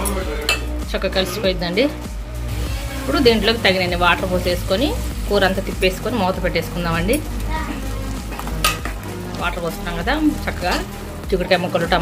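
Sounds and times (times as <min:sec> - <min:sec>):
metal spatula scraping a pot: 0:02.5 - 0:05.4.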